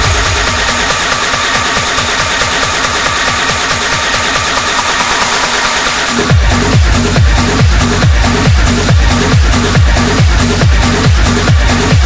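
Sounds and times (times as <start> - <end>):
fast pulsing bass: 0.0 - 12.0
hi-hats and synth: 0.0 - 12.0.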